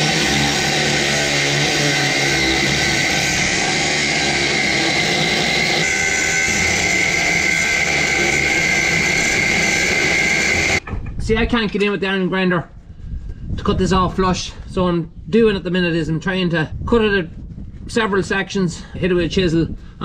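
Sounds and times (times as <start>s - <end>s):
angle grinder cutting steel: 0.0s - 10.8s.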